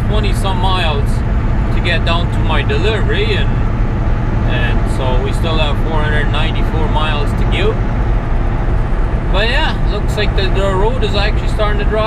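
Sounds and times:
diesel truck engine drone: 0.0 - 12.0
road noise: 0.0 - 12.0.

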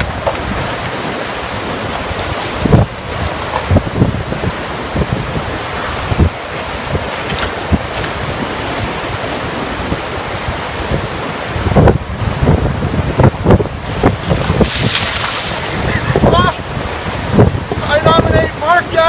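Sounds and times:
river rapids roaring: 0.0 - 19.0
wind buffeting microphone: 0.0 - 19.0
water poured over person: 14.5 - 16.0.

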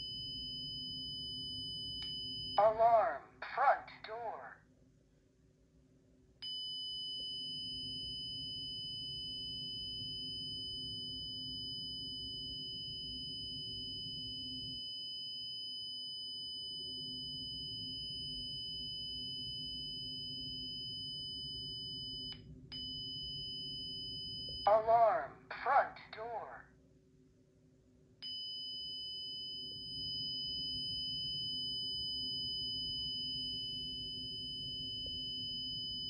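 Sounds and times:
high-pitched alarm siren: 6.5 - 25.3, 28.2 - 36.0.

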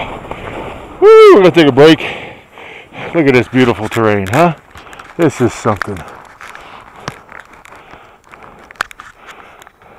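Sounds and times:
skis sliding over snow: 0.0 - 2.1, 2.9 - 9.9
crunches and clicks: 3.5 - 9.9.

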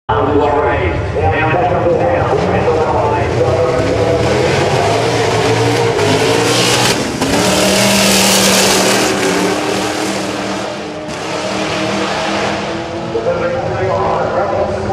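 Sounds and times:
cars accelerating hard: 1.6 - 14.9.

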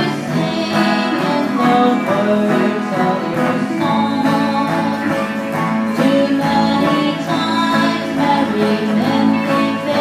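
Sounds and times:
guitars strumming and picking: 0.0 - 10.0
woman singing: 0.0 - 10.0.

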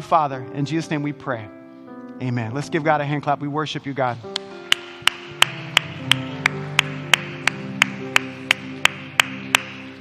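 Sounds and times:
soft instrumental chords: 0.0 - 10.0
hand clapping in steady beat: 4.3 - 10.0.

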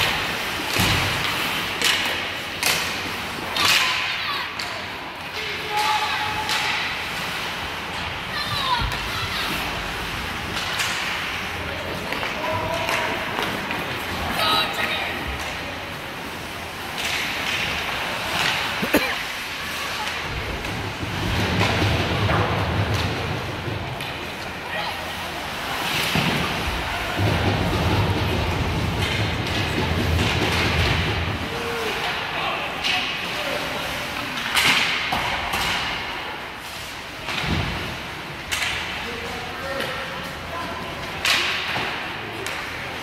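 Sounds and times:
hockey sticks knocking puck: 0.0 - 15.7, 16.3 - 24.6, 25.7 - 33.4, 34.2 - 36.2, 37.2 - 39.1, 39.7 - 43.0
crowd noise: 0.0 - 43.0
skates on ice: 0.0 - 43.0.

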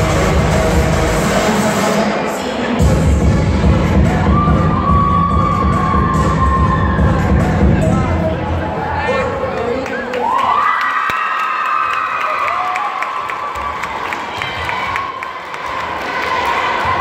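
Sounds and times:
crowd cheering and shouting: 0.0 - 17.0.

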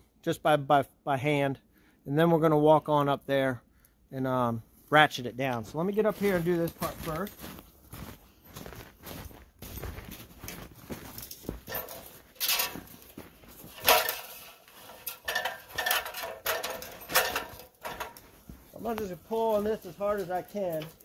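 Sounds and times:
footsteps crunching in snow: 5.6 - 15.1, 15.7 - 21.0
boots clanking on metal ladder: 6.0 - 21.0.

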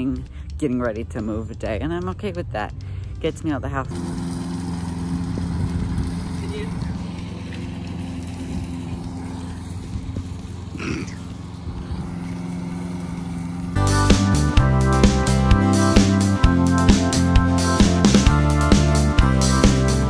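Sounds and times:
electric lawn mower humming: 2.7 - 20.0
music with drum beat: 13.8 - 20.0.

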